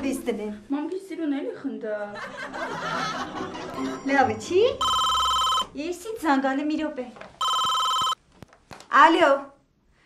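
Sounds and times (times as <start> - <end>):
telephone two-tone ring: 4.8 - 5.7, 7.4 - 8.2.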